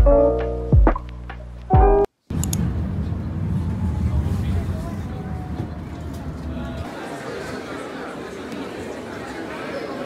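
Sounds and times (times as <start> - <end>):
bus engine and road rumble: 2.3 - 7.0.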